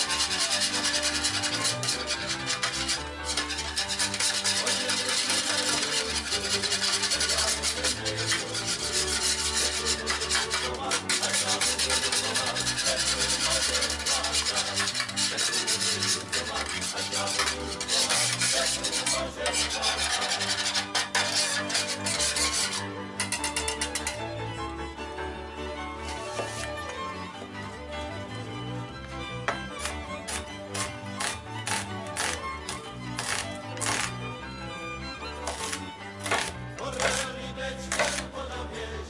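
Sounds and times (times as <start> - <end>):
whisk scraping metal pan: 0.0 - 24.3, 26.0 - 26.9, 29.5 - 34.2, 35.4 - 37.3, 37.9 - 38.3.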